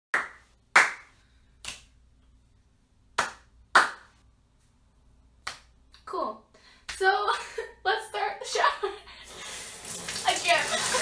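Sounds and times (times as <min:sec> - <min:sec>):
hand claps: 0:00.1 - 0:01.9, 0:03.2 - 0:04.2, 0:05.4 - 0:05.7.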